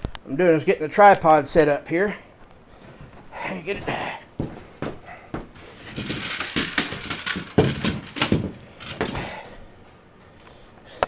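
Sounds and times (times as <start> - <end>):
rustling and scraping: 2.4 - 9.5.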